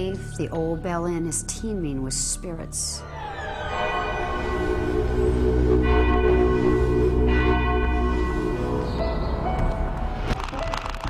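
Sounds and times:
low drone: 0.0s - 10.4s
deep bell tolling: 3.0s - 10.2s.

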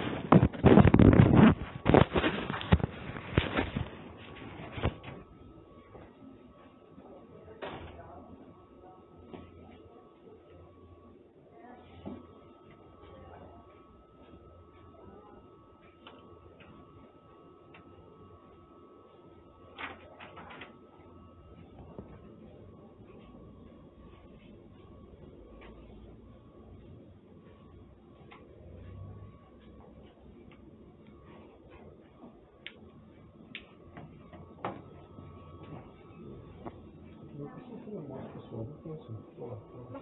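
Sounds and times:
low background hum: 0.0s - 40.0s.

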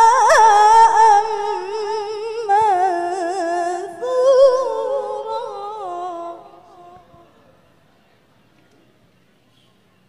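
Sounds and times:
woman chanting recitation: 0.0s - 7.7s.

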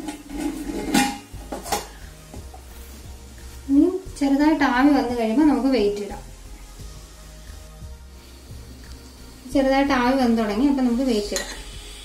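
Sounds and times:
metal lid scraping and clinking: 0.0s - 2.0s.

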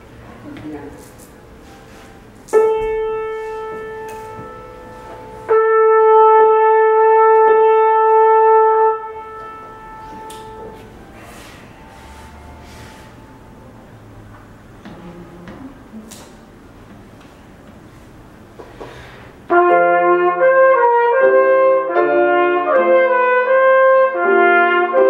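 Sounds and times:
piano: 0.0s - 25.0s
trumpet playing: 2.5s - 13.4s, 19.5s - 25.0s.

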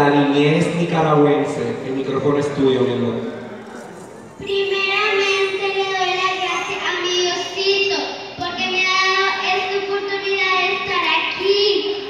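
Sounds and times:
girl speaking in sing-song voice: 4.4s - 12.0s.

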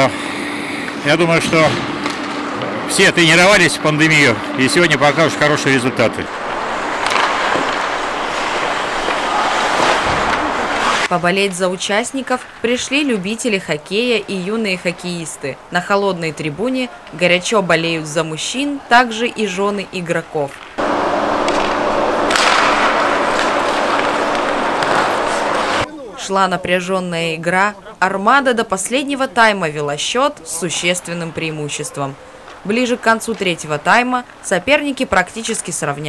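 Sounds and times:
constant low hum: 0.0s - 17.8s, 20.6s - 36.0s
hockey sticks and puck knocking: 6.4s - 11.1s, 20.6s - 25.9s
skates hissing on ice: 6.4s - 11.1s, 20.8s - 25.9s.

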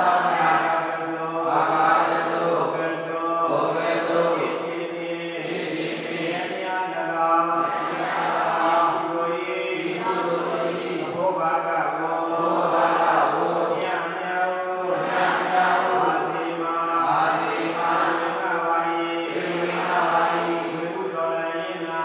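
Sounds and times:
voices chanting in unison: 0.0s - 22.0s.

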